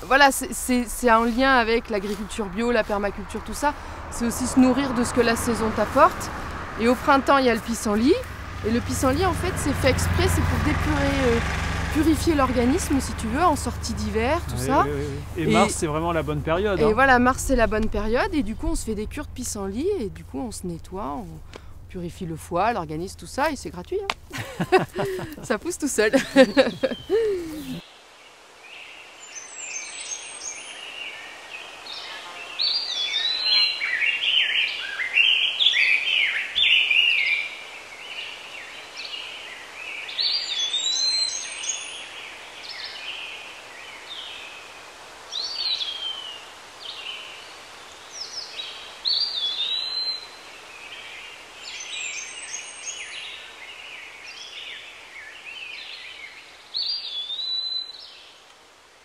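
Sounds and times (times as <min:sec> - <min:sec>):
faint outdoor hiss: 0:00.0 - 0:59.0
songbirds singing: 0:00.0 - 0:59.0.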